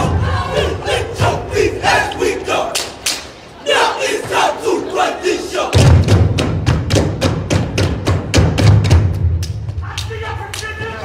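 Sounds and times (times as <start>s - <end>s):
group shouting: 0.0s - 2.8s.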